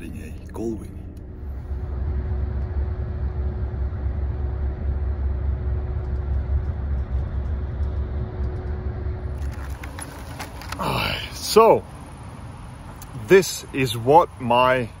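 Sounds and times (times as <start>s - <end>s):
bus engine and road rumble: 0.0s - 15.0s
faint steady hum: 0.0s - 15.0s.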